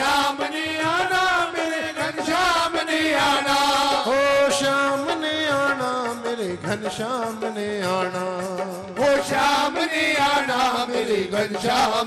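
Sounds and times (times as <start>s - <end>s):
chant-like devotional singing: 0.0s - 12.0s.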